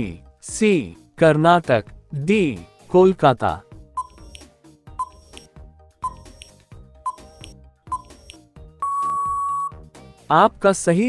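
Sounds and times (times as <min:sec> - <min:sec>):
soft background music: 0:00.0 - 0:11.0
countdown timer ticks: 0:04.0 - 0:09.7
steady beep: 0:05.0 - 0:05.2, 0:06.0 - 0:06.2, 0:07.1 - 0:08.1, 0:08.8 - 0:09.7.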